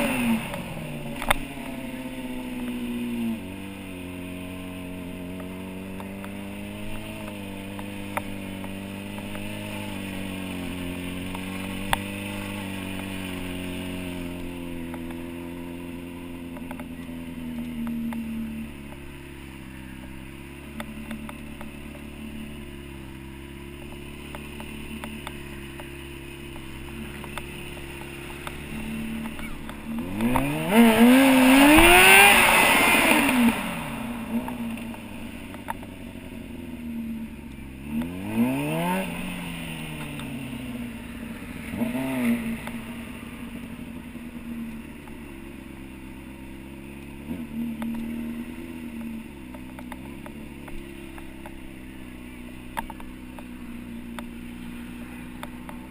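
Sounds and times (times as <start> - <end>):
motorcycle engine revving: 0.0 - 55.9.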